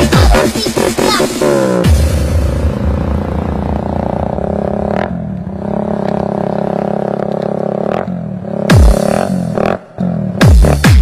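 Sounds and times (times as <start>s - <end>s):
electronic dance music: 0.0s - 3.1s, 8.7s - 9.2s, 10.4s - 11.0s
synth sweep: 0.0s - 5.1s.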